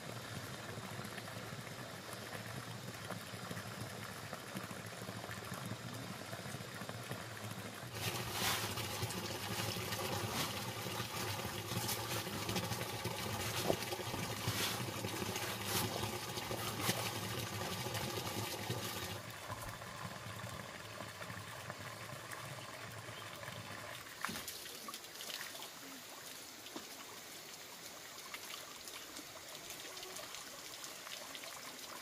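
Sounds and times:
water trickling: 0.2 - 32.0
water splashing on wooden floor: 7.9 - 17.1.

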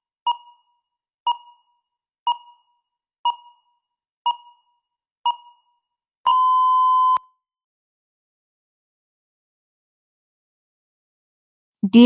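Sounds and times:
countdown timer beeping: 2.3 - 2.7, 3.3 - 3.7, 4.3 - 4.7, 5.3 - 5.7.

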